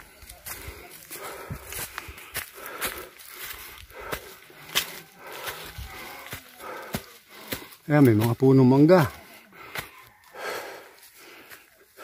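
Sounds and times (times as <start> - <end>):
footsteps on dry leaves and twigs: 0.0 - 12.0.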